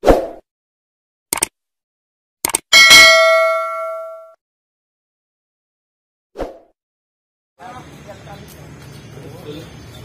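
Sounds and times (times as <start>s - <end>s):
notification bell ding: 2.7s - 4.4s.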